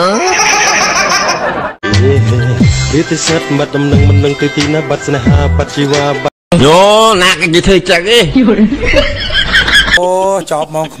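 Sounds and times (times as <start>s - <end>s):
high-pitched snickering laughter: 0.1s - 1.6s.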